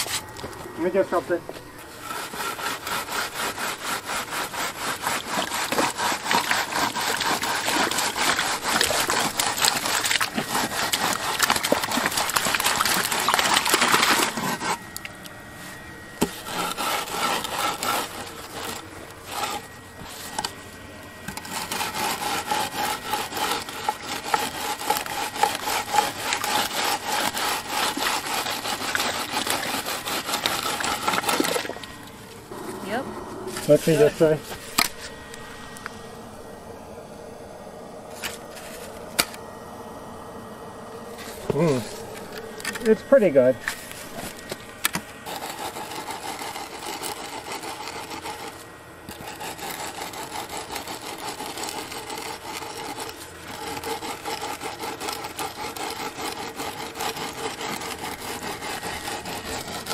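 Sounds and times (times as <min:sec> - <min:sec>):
board scraping wet concrete: 0:00.0 - 0:15.1, 0:16.2 - 0:20.6, 0:21.3 - 0:35.5, 0:38.1 - 0:39.4, 0:41.1 - 0:59.9.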